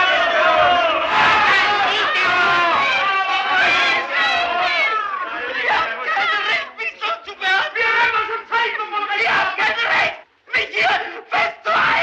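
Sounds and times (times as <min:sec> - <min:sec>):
crowd shouting and jeering: 0:00.0 - 0:12.0.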